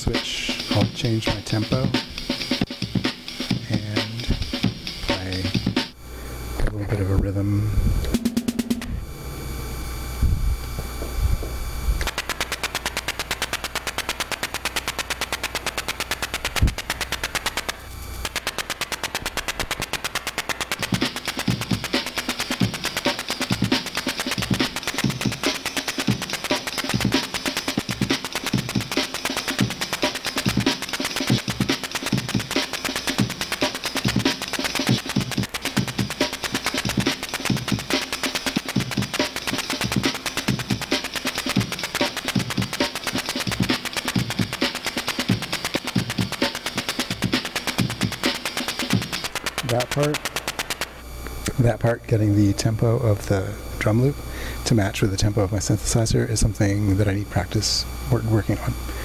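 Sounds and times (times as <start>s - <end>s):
drum loop: 0.0s - 9.0s, 10.8s - 58.9s
fast ticking pulse: 0.0s - 59.0s
low bass: 3.7s - 12.1s.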